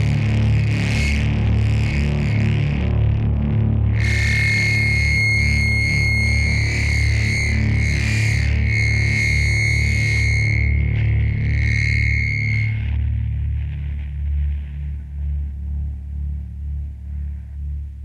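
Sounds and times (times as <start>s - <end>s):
distorted guitars and bass drone: 0.0s - 18.0s
long high held note: 3.9s - 13.0s.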